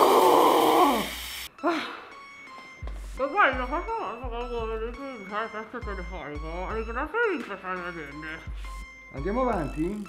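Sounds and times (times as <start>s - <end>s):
woman moaning: 0.0s - 1.9s.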